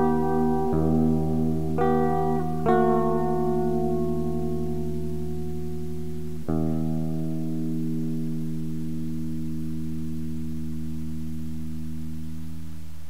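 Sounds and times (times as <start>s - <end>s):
ringing guitar chords: 0.0s - 13.0s.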